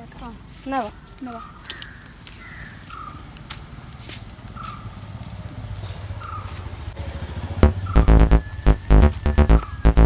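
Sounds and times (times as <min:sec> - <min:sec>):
bird calls: 0:00.8 - 0:03.3, 0:06.1 - 0:06.7, 0:07.7 - 0:10.0
electronic music with heavy beats: 0:07.6 - 0:10.0.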